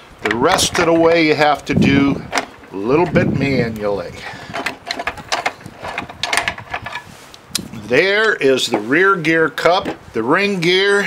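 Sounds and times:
metal parts clicking and clinking: 0:02.2 - 0:03.2, 0:04.4 - 0:07.1.

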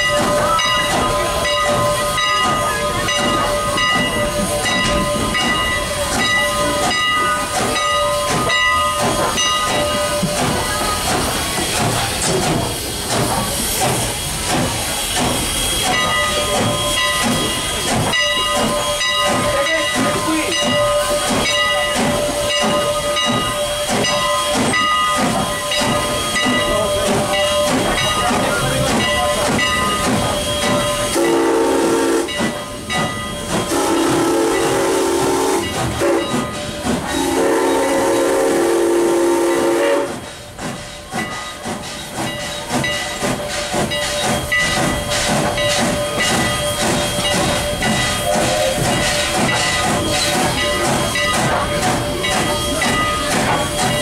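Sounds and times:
steam locomotive hissing: 0:00.0 - 0:54.0.

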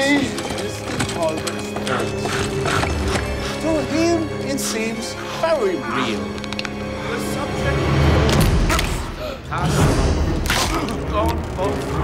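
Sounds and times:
leather and wooden chair creaking: 0:00.0 - 0:03.3.

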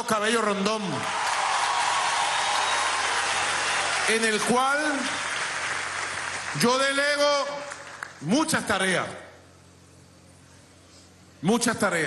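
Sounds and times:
crowd applauding and cheering: 0:00.9 - 0:08.3.

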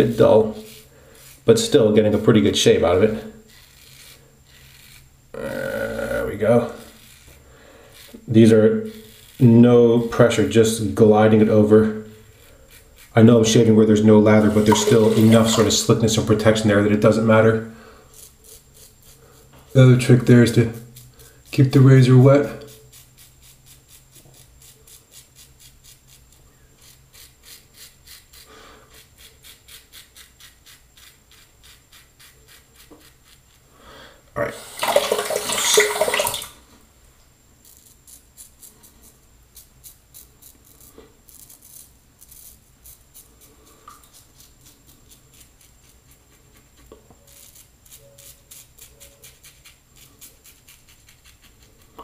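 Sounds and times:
razor scraping stubble: 0:00.0 - 0:33.7, 0:37.6 - 0:52.0
tap running water: 0:14.4 - 0:15.9, 0:34.6 - 0:36.6.

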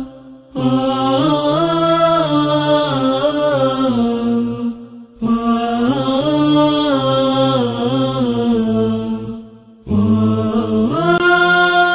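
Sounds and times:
person chanting: 0:00.0 - 0:11.9.

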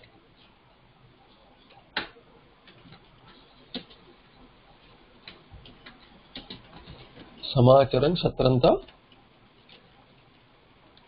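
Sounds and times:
computer keyboard keystrokes: 0:05.2 - 0:07.2.

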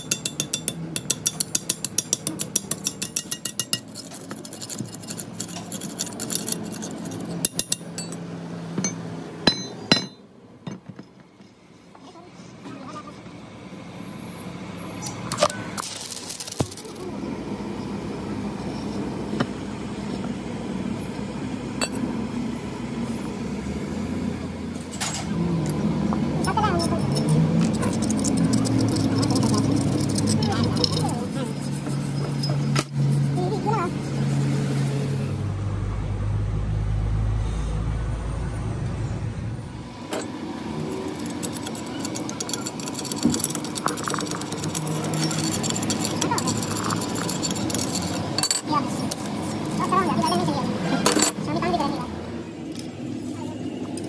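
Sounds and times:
workshop noise: 0:00.0 - 0:54.0
people talking: 0:12.0 - 0:13.3, 0:26.4 - 0:31.9, 0:33.3 - 0:34.0, 0:46.1 - 0:46.7, 0:48.5 - 0:52.2, 0:53.2 - 0:54.0.

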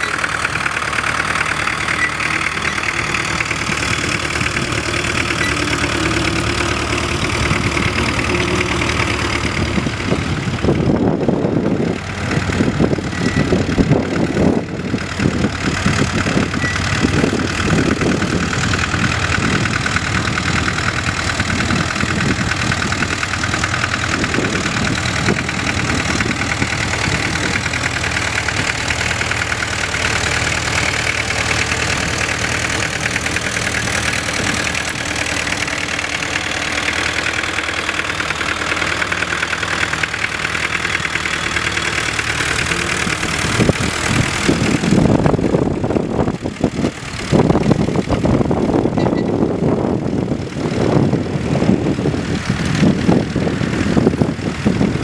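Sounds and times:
tractor diesel engine under load: 0:00.0 - 0:55.0.

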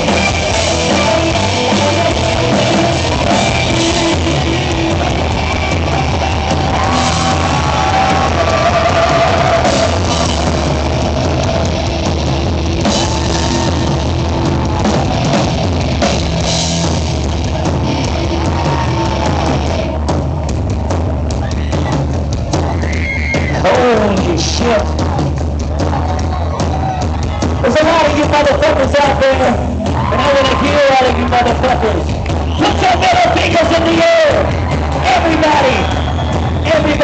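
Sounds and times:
wavering lead guitar: 0:00.0 - 0:22.0
rock band playing loud: 0:00.0 - 0:37.0.

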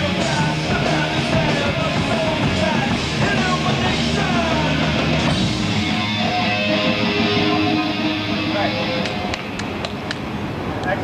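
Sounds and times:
rock band with electric guitar: 0:00.0 - 0:10.4.

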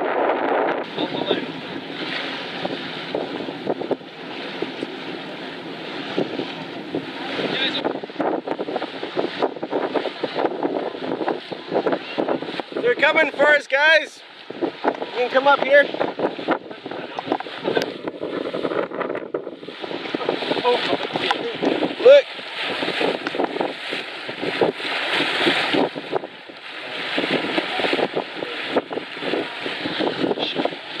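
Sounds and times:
bow wave rushing along hull: 0:00.0 - 0:31.0
wind buffeting microphone: 0:00.0 - 0:31.0.

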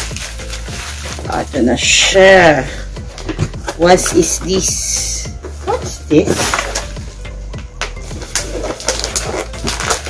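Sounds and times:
packaging rustling and crinkling: 0:00.0 - 0:01.8, 0:05.4 - 0:07.2, 0:08.0 - 0:10.0
background music with low beat: 0:00.0 - 0:10.0.

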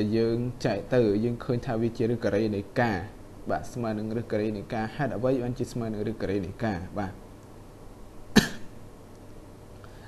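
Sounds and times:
low room noise: 0:00.0 - 0:10.0
single cough: 0:08.3 - 0:08.8.

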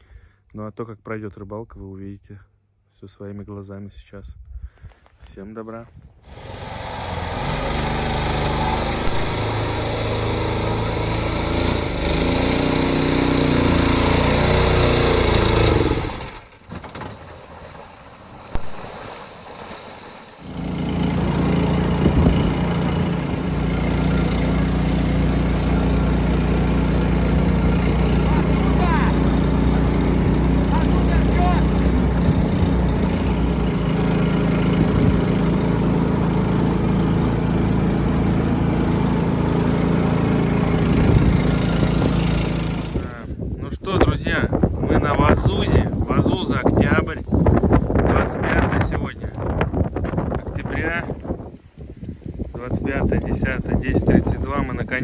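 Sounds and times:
all-terrain vehicle engine running: 0:06.3 - 0:43.2.

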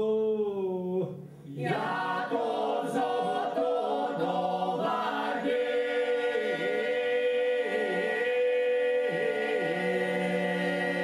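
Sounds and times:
group singing polyphonic song: 0:01.4 - 0:11.0.

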